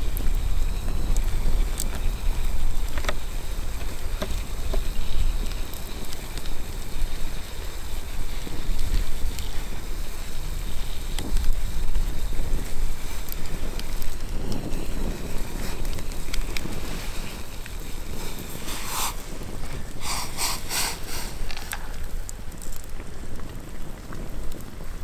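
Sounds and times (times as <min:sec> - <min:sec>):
campfire pops and crackles: 0:00.0 - 0:25.0
wind buffeting microphone: 0:00.0 - 0:25.0.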